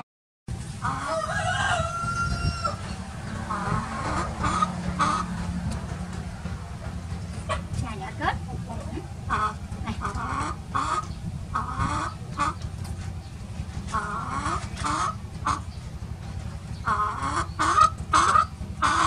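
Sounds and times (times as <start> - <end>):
rooster crowing: 0.8 - 3.0
rooster clucking: 0.8 - 19.0.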